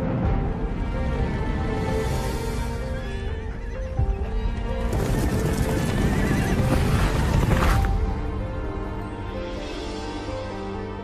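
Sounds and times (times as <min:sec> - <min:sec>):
dramatic trailer music: 0:00.0 - 0:11.0
horses galloping: 0:04.5 - 0:07.8
horses neighing: 0:04.8 - 0:07.8.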